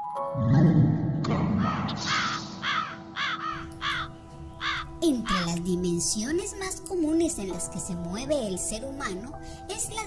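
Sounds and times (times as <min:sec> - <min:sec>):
bird squawking: 0:01.6 - 0:05.6.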